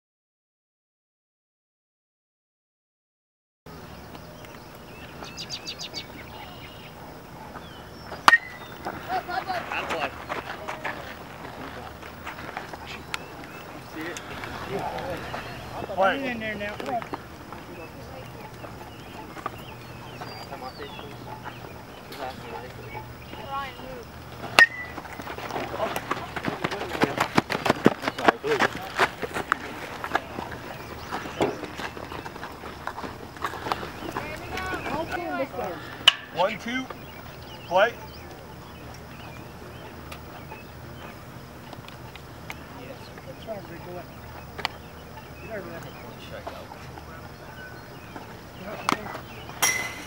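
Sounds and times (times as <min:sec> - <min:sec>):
voices shouting: 0:05.1 - 0:50.0
metal bat hitting ball: 0:08.3 - 0:08.6, 0:24.6 - 0:24.9, 0:49.6 - 0:50.0.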